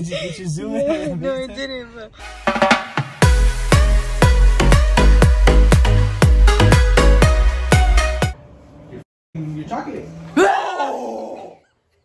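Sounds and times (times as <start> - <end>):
loud sudden cry: 10.3 - 11.8.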